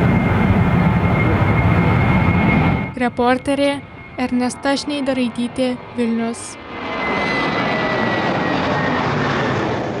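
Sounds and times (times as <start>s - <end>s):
high jet engine whine: 0.0s - 10.0s
jet engines roaring: 0.0s - 10.0s.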